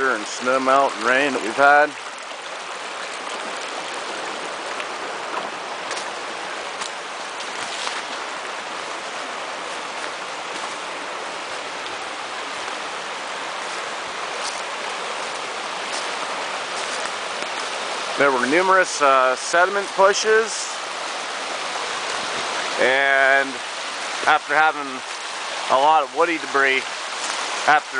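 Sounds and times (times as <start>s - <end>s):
brook rushing over stones: 0.0s - 27.9s.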